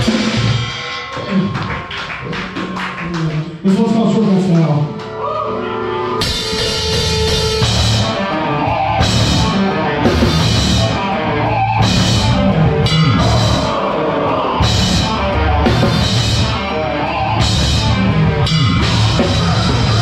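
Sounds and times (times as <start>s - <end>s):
distorted guitar: 0.0s - 20.0s
heavy metal band playing: 0.0s - 20.0s
drums hit hard: 6.2s - 20.0s.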